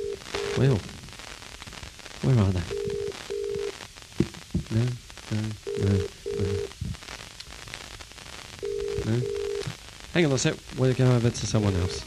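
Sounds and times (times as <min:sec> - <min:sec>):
telephone ringing tone double rings: 0:00.0 - 0:00.6, 0:02.7 - 0:03.7, 0:05.7 - 0:06.7, 0:08.6 - 0:09.6.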